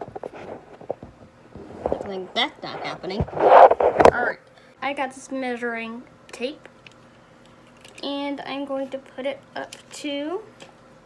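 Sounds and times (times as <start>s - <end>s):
fingers rubbing phone microphone: 0.0s - 4.2s.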